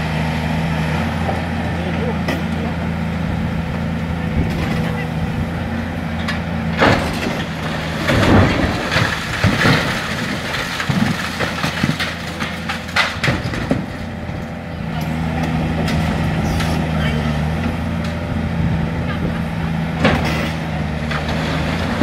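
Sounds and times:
excavator diesel engine running: 0.0s - 22.0s
concrete and masonry crashing down: 6.8s - 14.1s.

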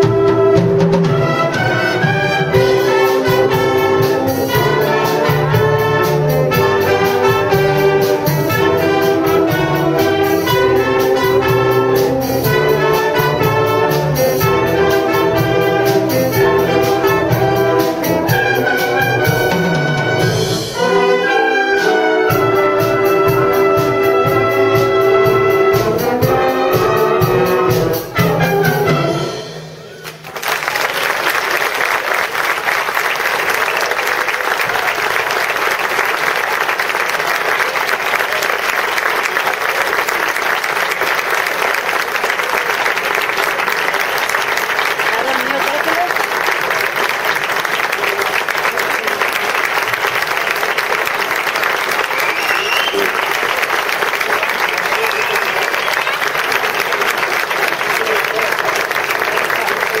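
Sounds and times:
audience applauding: 30.0s - 60.0s.

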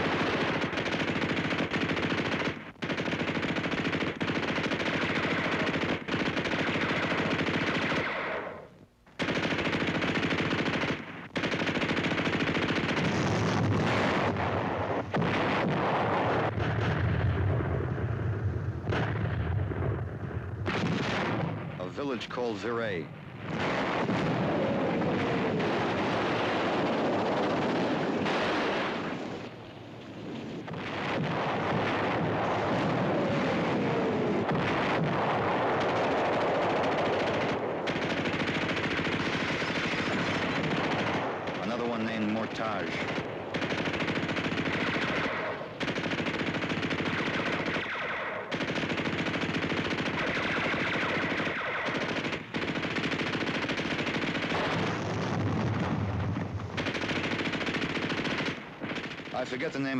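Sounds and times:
machine-gun and rifle fire: 0.0s - 29.5s, 30.6s - 59.9s
artillery explosions: 0.0s - 59.9s.

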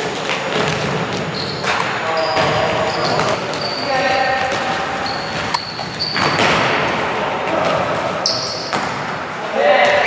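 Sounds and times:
voices calling out: 0.1s - 10.0s
ball thudding on court floor: 4.4s - 6.8s.

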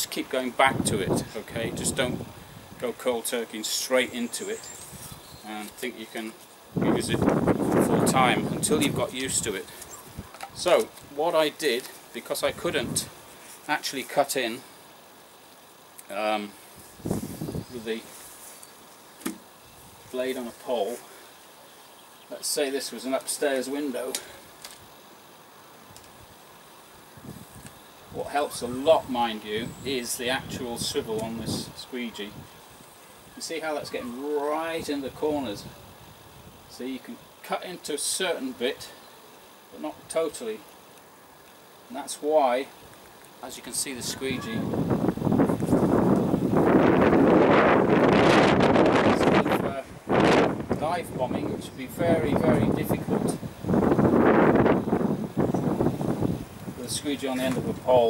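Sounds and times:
faint steady hiss: 0.0s - 58.0s
wind buffeting microphone: 0.6s - 2.8s, 6.7s - 10.7s, 16.9s - 17.8s, 44.2s - 57.9s.

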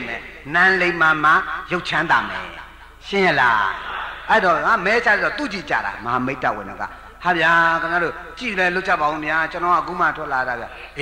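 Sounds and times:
man giving a sermon: 0.0s - 11.0s.

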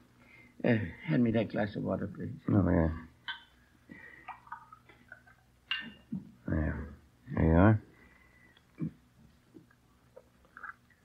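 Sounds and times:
glass clinking: 3.2s - 3.6s, 5.7s - 6.2s.

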